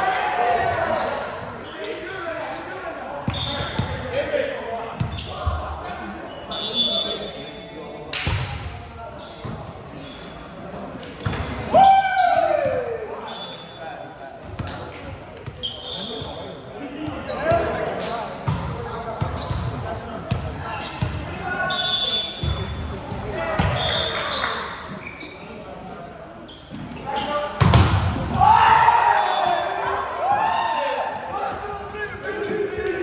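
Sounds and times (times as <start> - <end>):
players shouting in echoing hall: 0.0 - 7.5, 11.4 - 13.9, 27.0 - 33.0.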